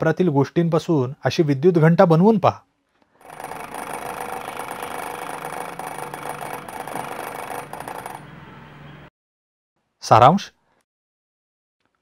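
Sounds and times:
electric bell buzzing: 3.2 - 8.8.

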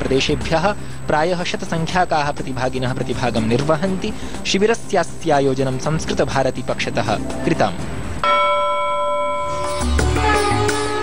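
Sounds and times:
jingle music with low beat: 1.6 - 11.0
bell-like chime: 8.2 - 10.1.

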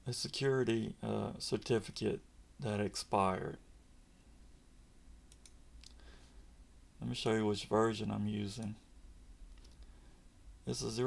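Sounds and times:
computer mouse clicks: 5.3 - 6.0, 9.5 - 9.9.

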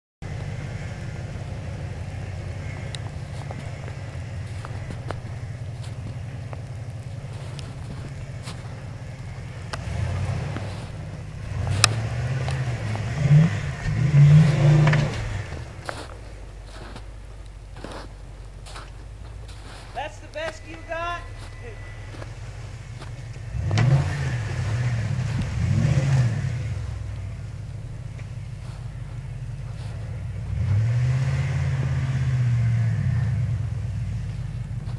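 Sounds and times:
car engine rumbling and revving: 0.2 - 34.9.

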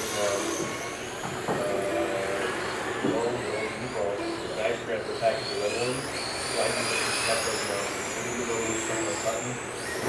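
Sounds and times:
rc car motors whining: 0.0 - 10.0.

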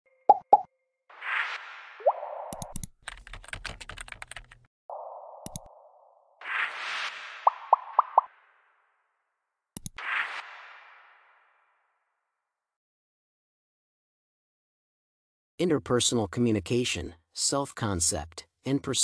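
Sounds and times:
rising blip: 0.3 - 2.8, 4.9 - 8.7
interface pops: 2.0 - 2.9, 4.9 - 8.3
mouse click: 2.5 - 2.9, 5.4 - 5.7, 9.8 - 10.0
keyboard typing clicks: 2.5 - 4.6, 5.4 - 5.7, 9.8 - 10.0.

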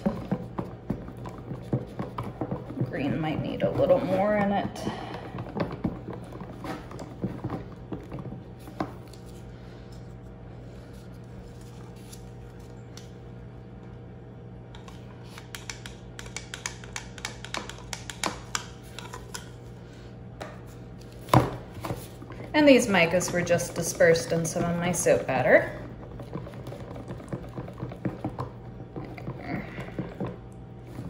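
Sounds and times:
whisk ticking against plastic: 23.0 - 30.4.

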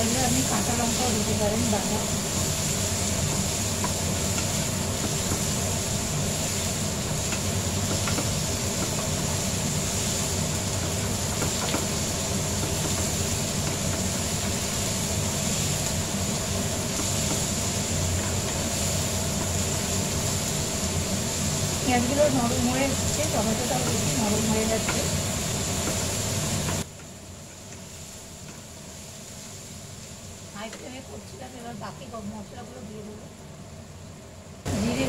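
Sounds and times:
food frying in a pan: 0.0 - 35.0
steady low hum: 0.0 - 35.0
spatula scraping and tapping pan: 3.2 - 5.5, 7.3 - 9.4, 10.6 - 14.1.

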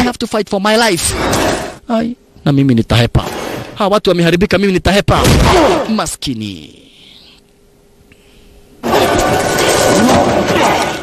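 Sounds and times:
loud dense crashing din: 8.8 - 11.0.

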